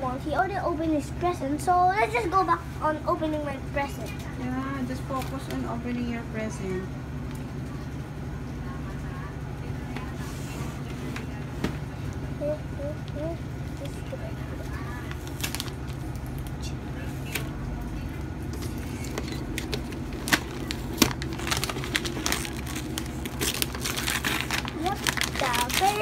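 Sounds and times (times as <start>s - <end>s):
steady low hum: 0.0s - 26.0s
wrapping paper crinkling and tearing: 15.0s - 16.5s, 18.9s - 26.0s.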